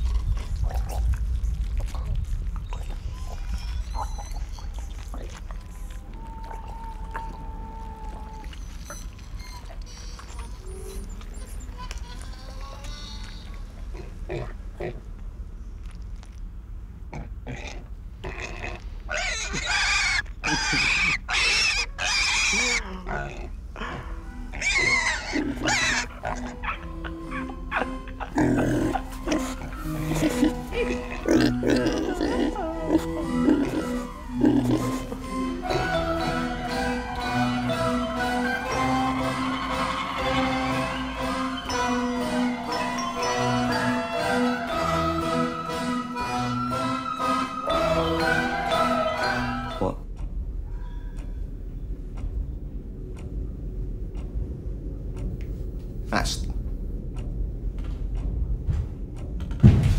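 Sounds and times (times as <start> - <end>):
pig squealing: 2.8 - 15.0, 18.3 - 50.0
music: 23.8 - 50.2.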